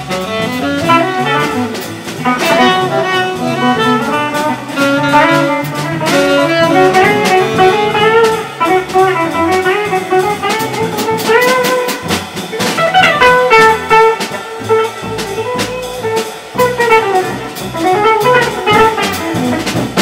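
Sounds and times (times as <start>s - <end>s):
drum kit with ticking cymbals: 0.0s - 20.0s
walking double bass: 0.0s - 20.0s.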